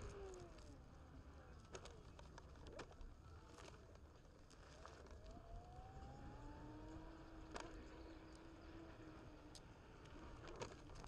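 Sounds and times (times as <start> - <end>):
hub motor whine: 0.0 - 1.3, 5.1 - 11.0.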